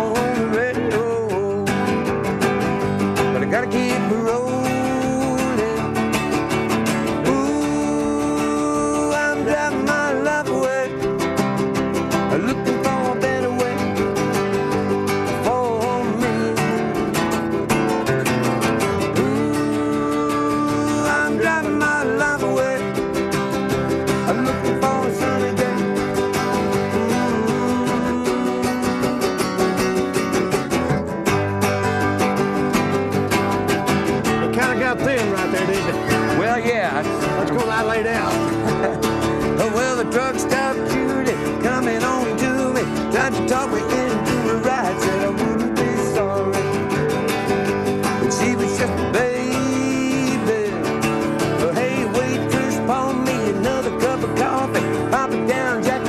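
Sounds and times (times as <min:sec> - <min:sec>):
acoustic guitars playing country: 0:00.0 - 0:56.0.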